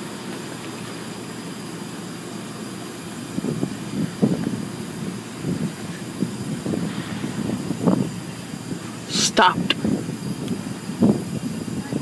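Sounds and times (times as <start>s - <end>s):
car wash brushes and water spray: 0.0s - 12.0s.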